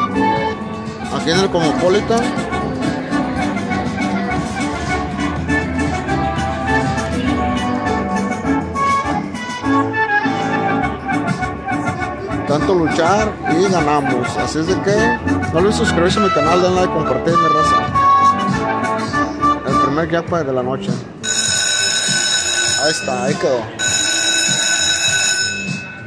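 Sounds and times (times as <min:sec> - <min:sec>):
man's voice: 0:01.0 - 0:02.4, 0:12.4 - 0:17.9, 0:19.4 - 0:21.1, 0:22.6 - 0:23.8
slot machine win music: 0:21.2 - 0:26.0.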